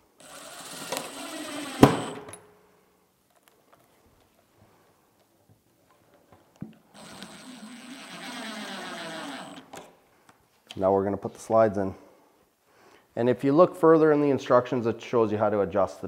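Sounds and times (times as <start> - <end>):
cordless driver motor whirring: 0.2 - 2.2, 6.9 - 9.8.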